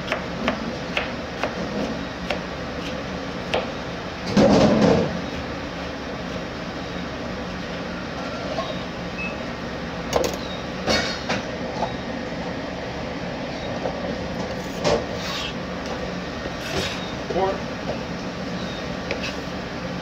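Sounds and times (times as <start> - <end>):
steady mechanical hum: 0.0 - 20.0.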